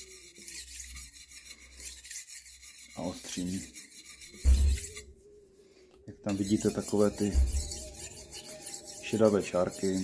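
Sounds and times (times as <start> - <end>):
knife scraping on sharpening stone: 0.0 - 5.2, 6.3 - 10.0.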